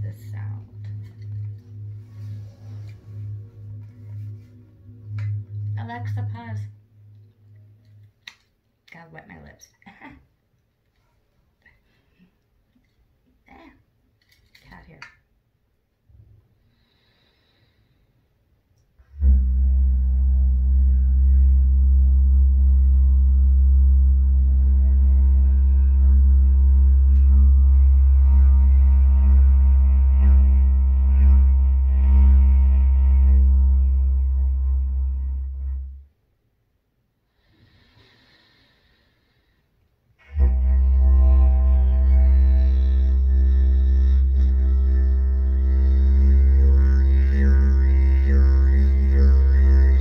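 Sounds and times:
didgeridoo low drone: 0.0s - 8.3s, 19.0s - 36.1s, 40.2s - 50.0s
faint breaths: 16.6s - 18.4s, 37.3s - 39.9s.

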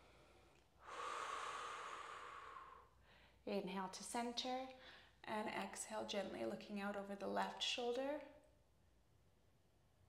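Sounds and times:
woman breathing out: 0.0s - 3.4s.

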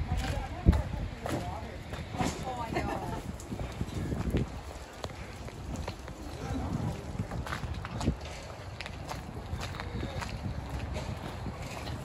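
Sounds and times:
footsteps on wet pavement: 0.0s - 12.0s.

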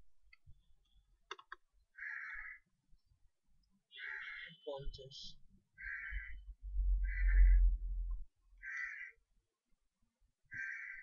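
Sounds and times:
harsh bird caw: 1.9s - 2.7s, 3.9s - 4.6s, 5.8s - 7.8s, 8.6s - 9.2s, 10.5s - 11.0s
low rumble: 6.0s - 8.3s.

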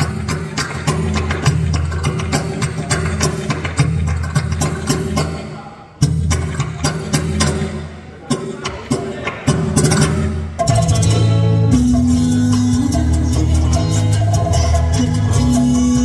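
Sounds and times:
bachata music: 0.0s - 16.0s.

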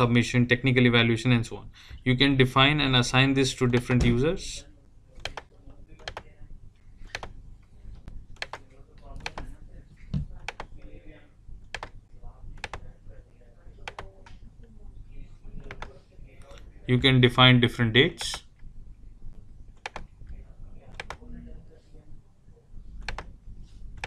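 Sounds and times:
low steady hum: 0.0s - 24.0s
computer mouse and keyboard clicks: 5.2s - 6.3s, 7.0s - 7.4s, 8.4s - 8.6s, 9.2s - 10.8s, 13.8s - 14.4s, 19.8s - 21.2s, 23.0s - 23.3s.

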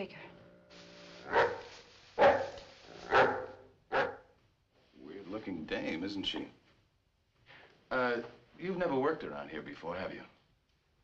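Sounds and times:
dog barking: 1.2s - 4.3s.

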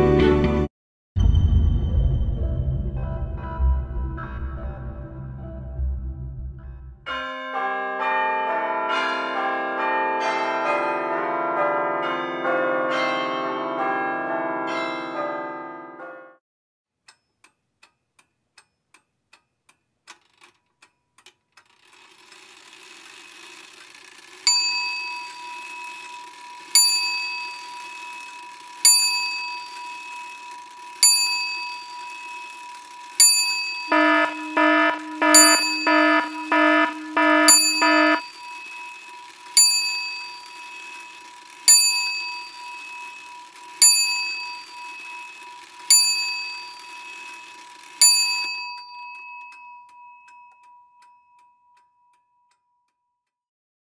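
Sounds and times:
bell ringing: 24.5s - 41.2s, 41.8s - 50.6s.

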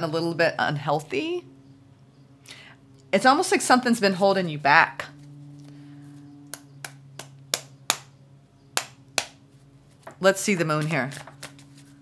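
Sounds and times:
steady low hum: 0.0s - 12.0s
cards shuffling clicks: 8.8s - 12.0s.

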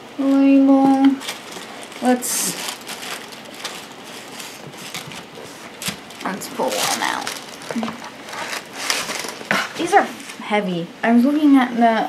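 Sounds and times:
tissue paper rustling: 0.2s - 10.5s.

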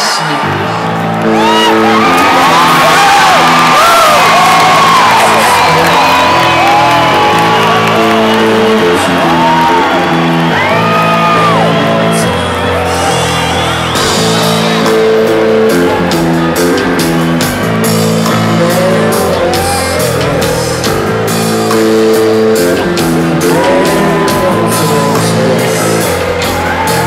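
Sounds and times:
crowd whooping and shouting: 0.0s - 27.0s
live rock band playing chords: 0.0s - 27.0s.

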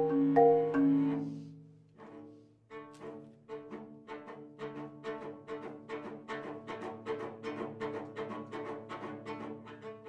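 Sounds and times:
marimba mallet strokes: 0.0s - 1.6s
bowed cello line: 0.0s - 10.0s.

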